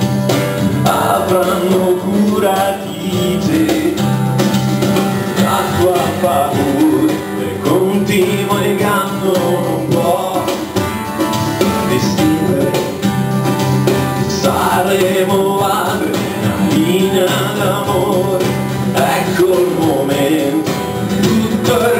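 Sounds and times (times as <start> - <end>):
acoustic guitar music: 0.0 - 21.9.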